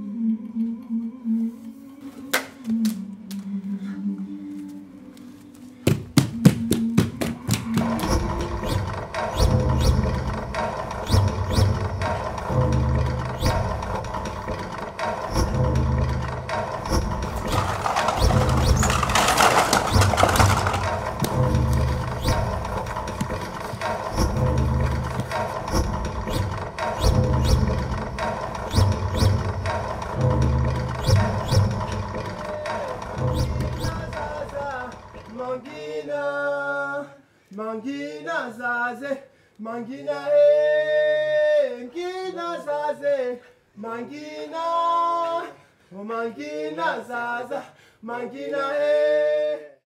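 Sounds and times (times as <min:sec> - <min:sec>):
quick run of clicks: 0:17.2 - 0:24.3.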